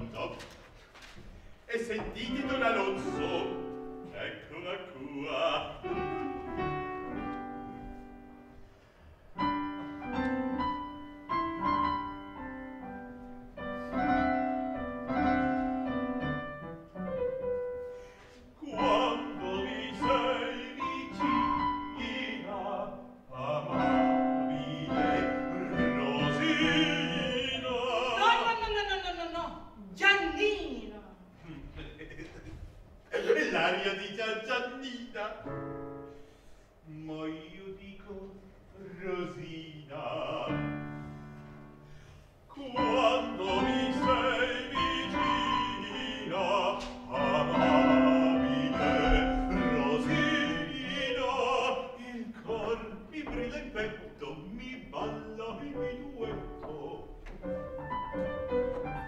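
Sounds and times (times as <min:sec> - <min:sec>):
man singing operatically: 0:01.7 - 0:06.3, 0:18.6 - 0:28.6, 0:33.2 - 0:35.6, 0:36.8 - 0:40.9, 0:42.5 - 0:57.2
piano accompaniment: 0:01.7 - 0:28.8, 0:33.6 - 0:36.8, 0:39.0 - 0:59.0
solo piano playing: 0:05.8 - 0:08.6, 0:09.4 - 0:17.9, 0:42.7 - 0:51.8, 0:54.9 - 0:59.0.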